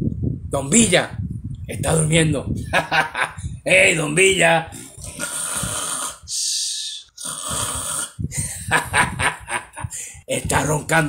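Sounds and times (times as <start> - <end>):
person snoring loudly: 4.8 - 6.3, 7.2 - 8.4.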